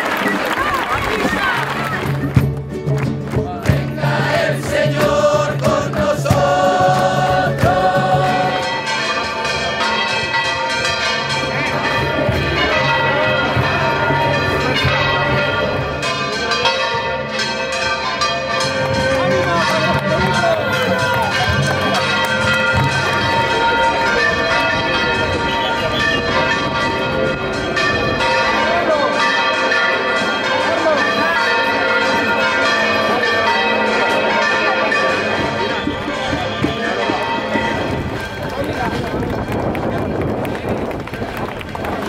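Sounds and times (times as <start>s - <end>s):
large crowd noise: 0.0s - 42.0s
acoustic guitars: 1.1s - 8.9s
crowd singing: 3.4s - 10.1s
church bells ringing: 3.9s - 42.0s.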